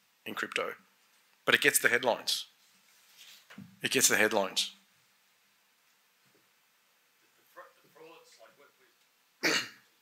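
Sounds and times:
man coughing into microphone: 0:09.4 - 0:09.9.

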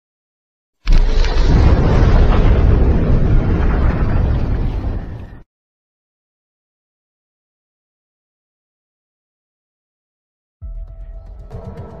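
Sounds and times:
bass-heavy explosion: 0:00.9 - 0:05.4.

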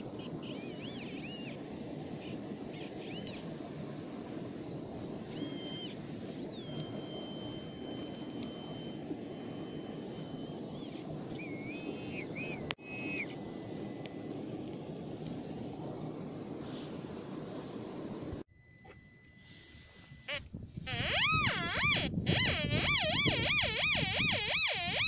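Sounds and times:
metal detector tones: 0:06.6 - 0:14.8, 0:18.5 - 0:25.0.

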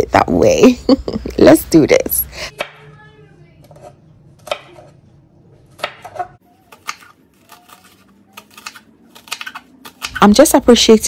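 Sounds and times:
knife chopping on wooden board: 0:05.8 - 0:10.2.

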